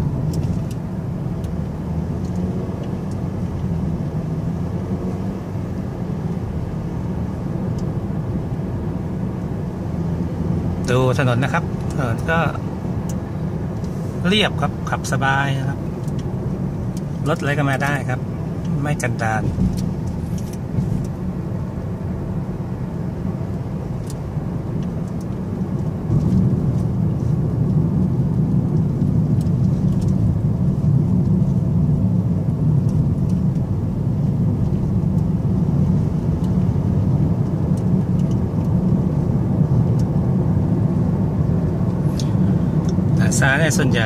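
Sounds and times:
car road and engine rumble: 0.0s - 44.0s.

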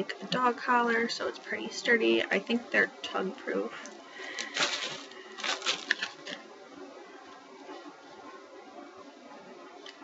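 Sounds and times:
paper rustling: 4.2s - 6.4s.

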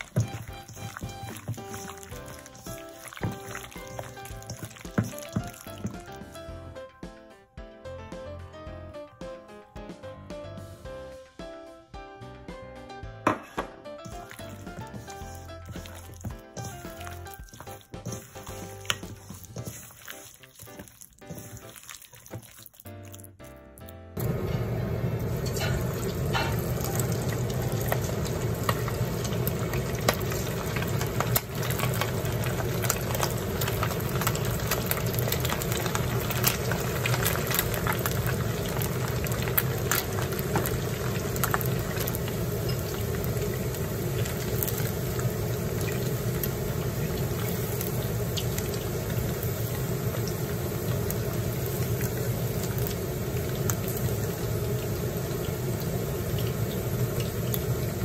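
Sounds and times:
chicken deep-frying in oil: 0.0s - 6.7s, 14.0s - 23.6s, 24.2s - 58.0s.

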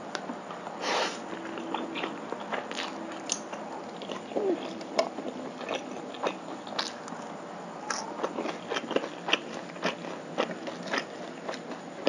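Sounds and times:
chewing noodles: 4.0s - 7.0s.

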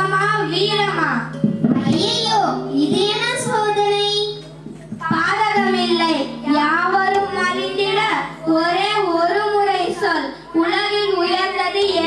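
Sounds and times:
girl singing into microphone: 0.0s - 12.0s.

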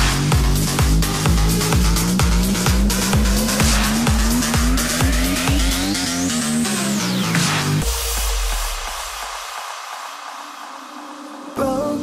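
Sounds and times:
kick drum: 0.0s - 6.0s
synth bass: 0.0s - 10.8s
rising synth sweep: 0.0s - 11.9s.

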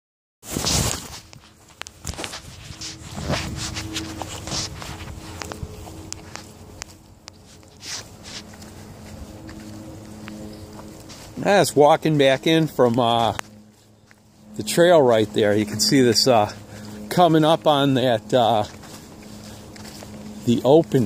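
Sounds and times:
footsteps on grass and leaves: 0.4s - 21.0s.

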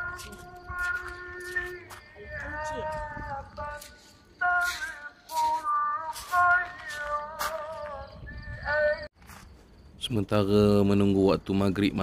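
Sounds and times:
person singing long notes: 0.0s - 9.1s.

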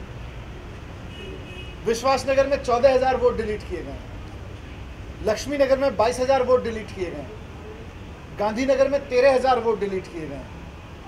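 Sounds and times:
man speaking: 1.8s - 4.1s, 5.2s - 7.4s, 8.4s - 10.6s.

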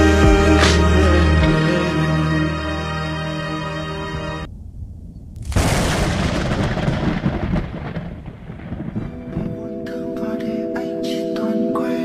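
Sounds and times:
low rumble: 4.0s - 9.7s
thunder-like crash: 4.4s - 9.5s.

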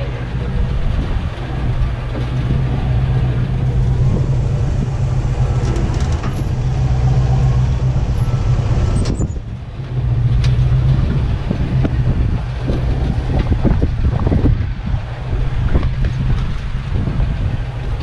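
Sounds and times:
vehicle engine at crawling speed: 0.0s - 18.0s.

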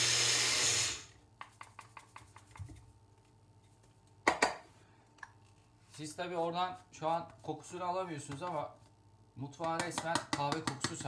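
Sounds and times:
blender grinding coffee beans: 0.0s - 1.1s.

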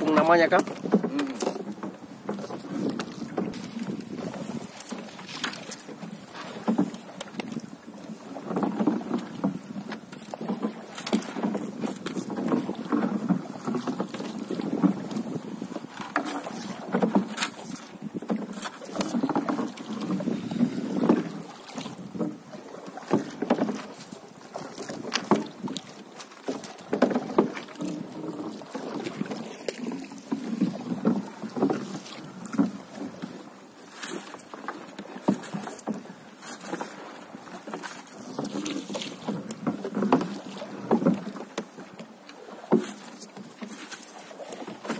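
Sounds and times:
paddle splashing in water: 0.0s - 44.9s.

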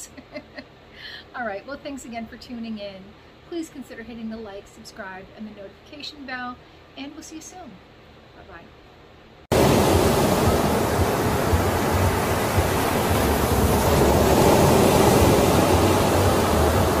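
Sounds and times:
waves breaking: 9.5s - 17.0s.

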